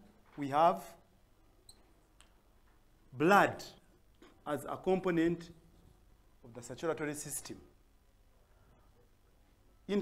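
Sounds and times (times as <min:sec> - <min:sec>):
faint high squeak: 0:01.6 - 0:02.0.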